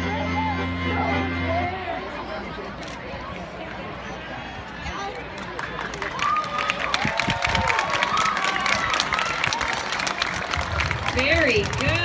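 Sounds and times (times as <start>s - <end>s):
audience clapping: 5.4s - 12.0s.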